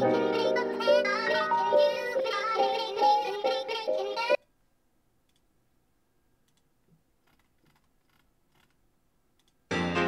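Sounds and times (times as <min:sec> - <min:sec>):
musical backing: 0:09.7 - 0:10.0.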